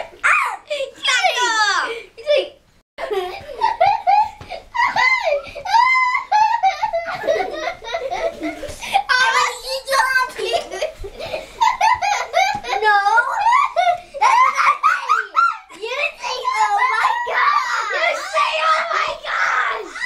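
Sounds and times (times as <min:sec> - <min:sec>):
children laughing and giggling: 0:00.0 - 0:20.0.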